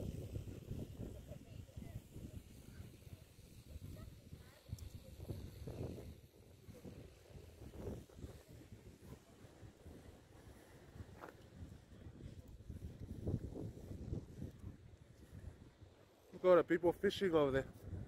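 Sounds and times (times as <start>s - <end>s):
wind buffeting microphone: 0.0s - 16.0s, 17.6s - 18.0s.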